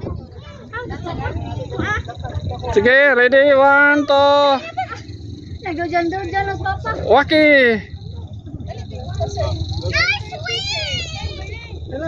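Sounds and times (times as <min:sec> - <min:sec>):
people talking in background: 0:00.0 - 0:12.0
wind rumble on microphone: 0:00.0 - 0:12.0.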